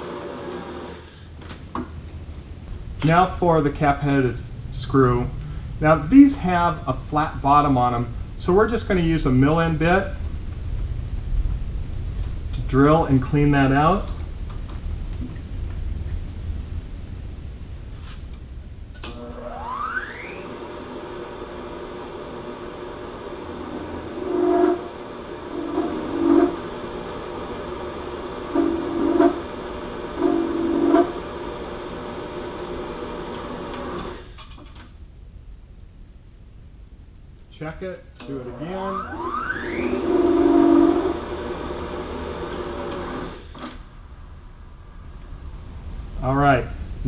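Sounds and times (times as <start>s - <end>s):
milling machine spindle whine: 0.0s - 1.4s, 2.2s - 47.0s
end mill cutting aluminum: 18.9s - 34.6s, 38.5s - 44.1s.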